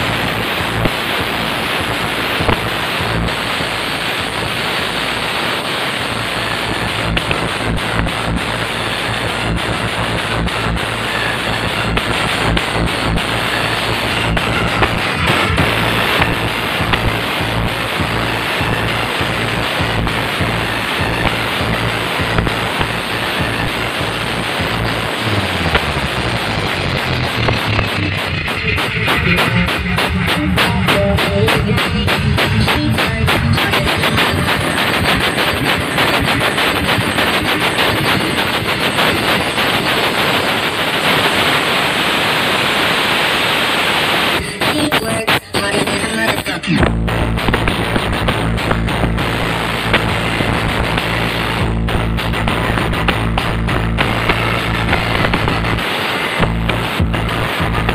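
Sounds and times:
loud distorted dance music: 0.0s - 57.9s.

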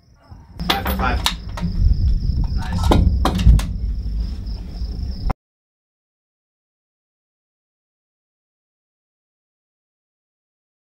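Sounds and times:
high insect trill: 0.0s - 5.4s
wind rumble on microphone: 0.3s - 5.3s.

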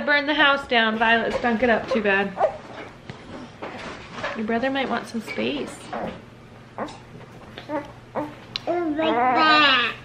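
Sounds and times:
small child whimpering: 7.6s - 10.0s.

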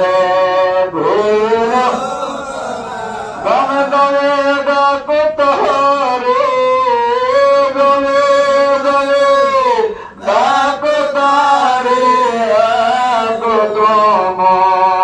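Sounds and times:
man chanting unaccompanied: 0.6s - 15.0s.

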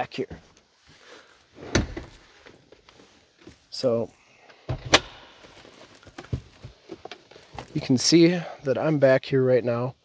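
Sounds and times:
faint shuffling: 0.0s - 4.7s, 5.3s - 8.9s.

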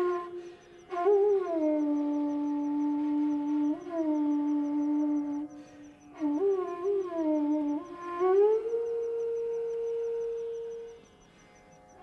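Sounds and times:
bamboo flute long note: 0.0s - 11.1s.

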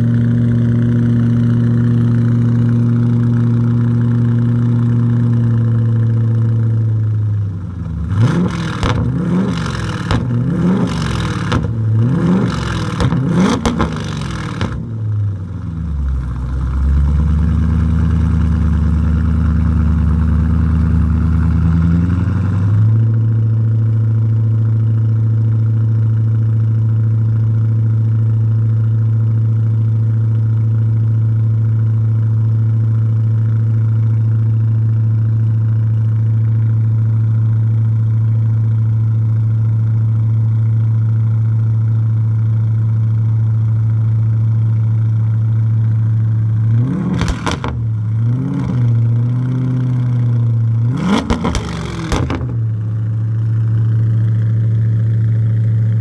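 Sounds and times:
car engine idling: 0.0s - 56.0s
engine revving: 7.8s - 14.9s, 46.5s - 52.8s.

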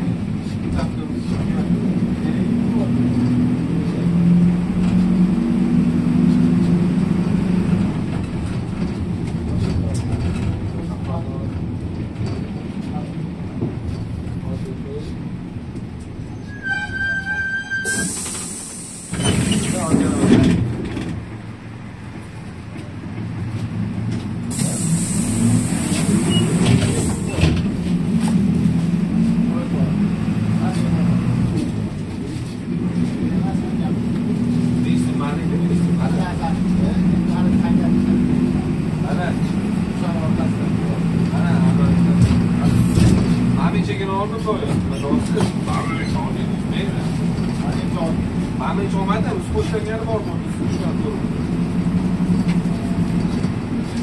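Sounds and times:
bus engine and road noise: 0.0s - 54.0s.

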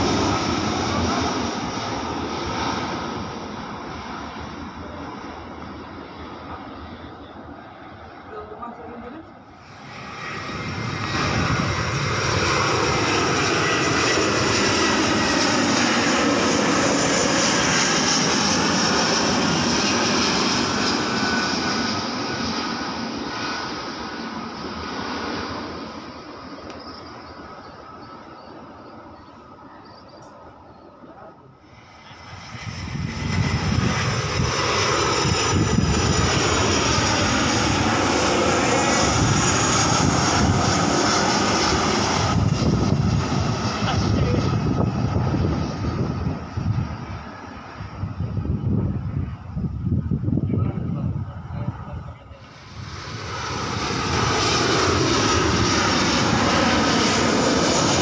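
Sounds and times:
jet airliner passing overhead: 0.0s - 58.0s.

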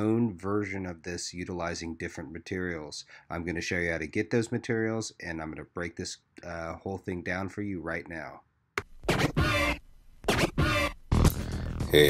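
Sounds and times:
record scratch sound effect: 8.8s - 12.0s.

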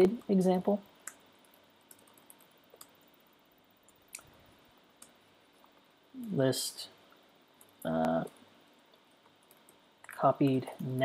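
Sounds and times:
soft keyboard clicks: 1.0s - 3.2s, 7.1s - 11.0s.

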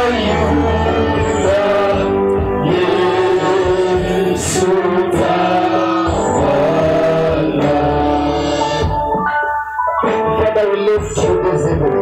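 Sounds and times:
congregation singing: 0.0s - 9.4s
musical backing: 0.0s - 12.0s.

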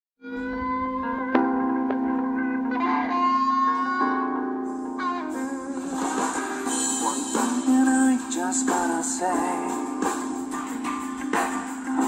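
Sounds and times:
electric guitar notes ringing: 0.2s - 7.8s.

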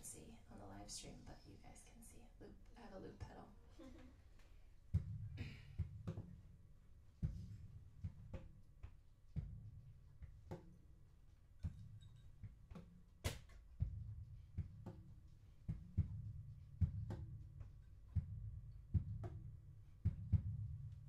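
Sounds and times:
percussive guitar body tapping: 4.9s - 6.4s, 7.2s - 10.8s, 11.6s - 20.6s.

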